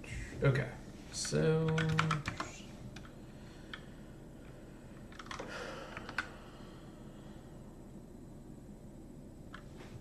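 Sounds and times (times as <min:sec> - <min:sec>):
computer keyboard keystrokes: 0:01.2 - 0:03.1, 0:05.1 - 0:06.3.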